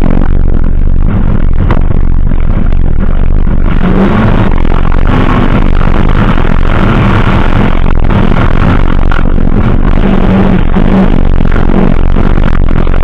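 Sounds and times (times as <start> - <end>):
loud distorted car engine: 0.0 - 13.0.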